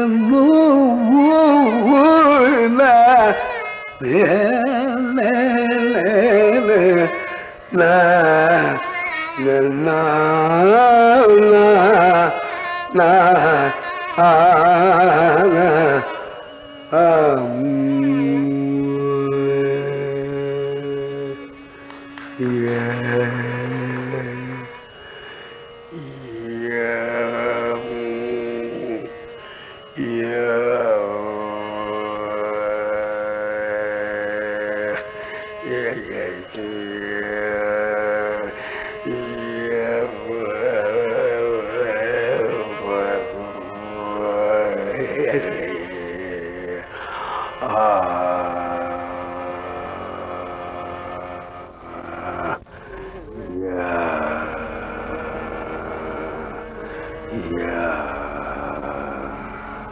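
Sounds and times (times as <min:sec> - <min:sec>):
slow classical music with sliding notes: 0:00.0 - 0:59.9.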